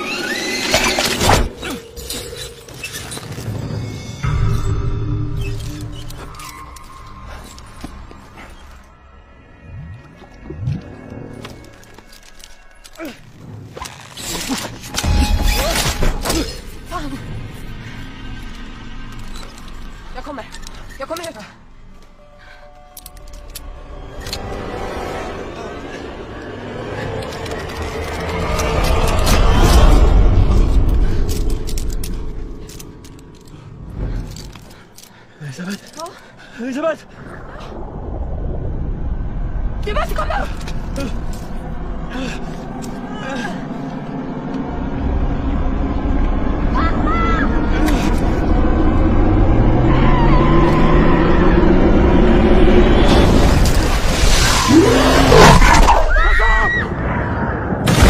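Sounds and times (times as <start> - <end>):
dense low rumble: 37.1 - 54.2.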